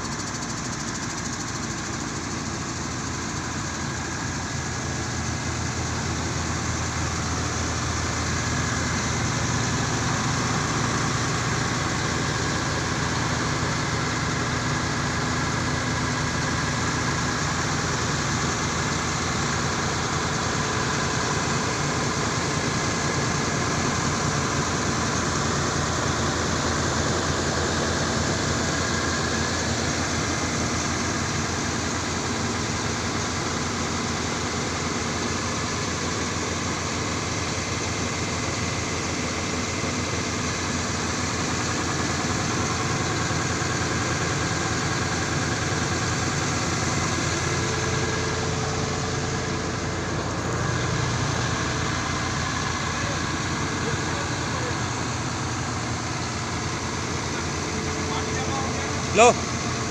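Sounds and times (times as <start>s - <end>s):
diesel engine idling: 0.0s - 59.9s.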